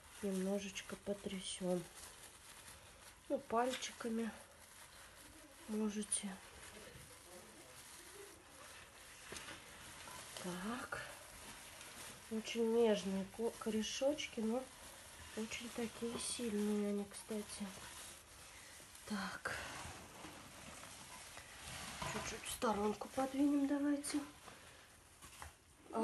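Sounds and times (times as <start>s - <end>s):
soil and glove rustling: 0.0s - 26.0s.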